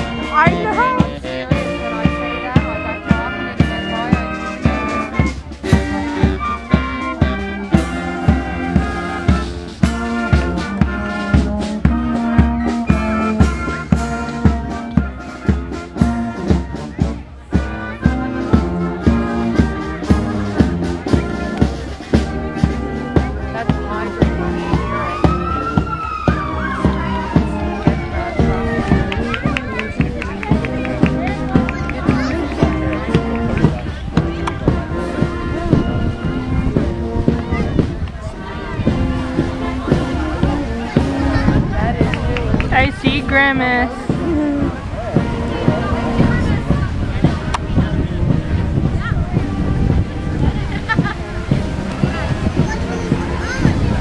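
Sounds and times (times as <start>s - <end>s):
marching band playing: 0.0s - 54.0s
siren-like wail: 24.7s - 28.8s.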